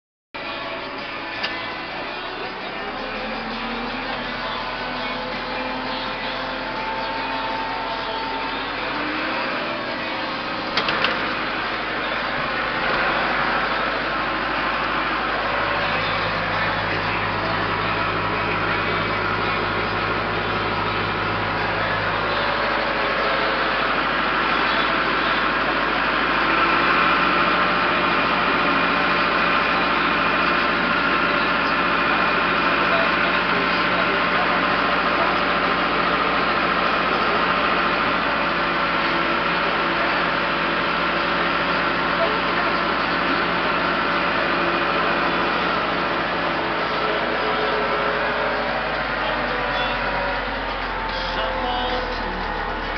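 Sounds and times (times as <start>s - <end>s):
tractor engine running: 0.4s - 52.9s.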